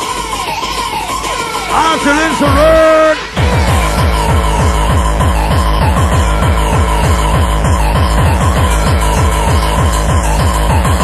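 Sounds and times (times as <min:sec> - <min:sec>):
fast kick drum beat: 0:01.7 - 0:11.0.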